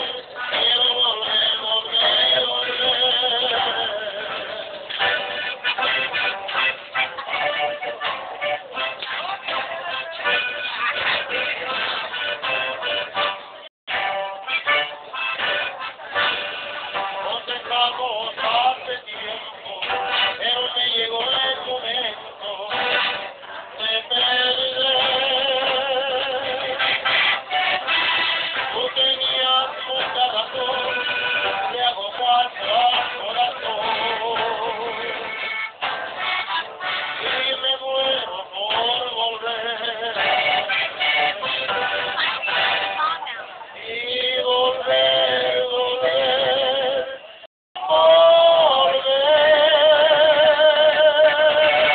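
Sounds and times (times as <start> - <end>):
men singing: 0.0 - 5.3, 17.2 - 26.8, 28.7 - 35.4, 37.1 - 41.7, 43.8 - 47.2, 47.8 - 51.9
accordion: 0.0 - 43.4, 49.3 - 51.9
strummed acoustic guitar: 0.0 - 43.5.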